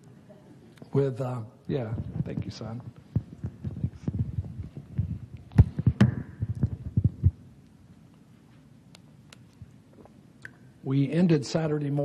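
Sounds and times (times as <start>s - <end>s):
microphone handling thumps and clicks: 1.8s - 7.5s.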